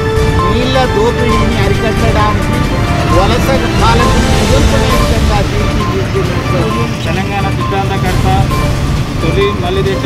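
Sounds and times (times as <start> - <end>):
background music: 0.0 - 10.0
man speaking: 0.4 - 10.0.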